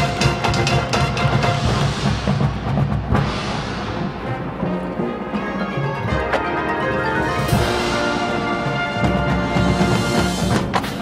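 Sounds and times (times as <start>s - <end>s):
drum and timpani hits: 0.0s - 4.7s, 7.4s - 11.0s
marching band sustained notes: 0.0s - 11.0s.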